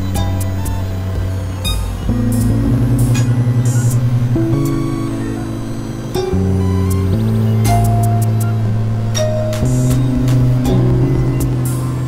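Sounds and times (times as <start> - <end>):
synthesizer drone tones: 0.0 - 12.0.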